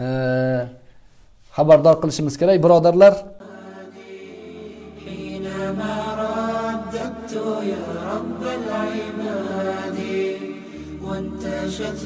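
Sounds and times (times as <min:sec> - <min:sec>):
chanted vocal music: 0:03.4 - 0:12.0
steady low drone: 0:03.4 - 0:12.0.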